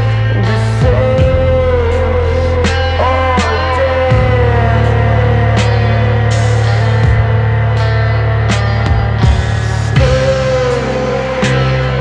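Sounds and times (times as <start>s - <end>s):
low bass note: 0.0s - 12.0s
sustained electric guitar tones: 0.0s - 12.0s.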